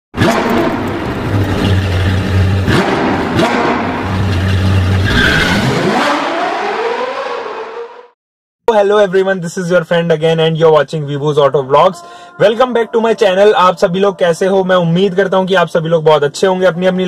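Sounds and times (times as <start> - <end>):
sharp hits: 0.2 - 5.2
sports car engine revving: 0.2 - 8.1.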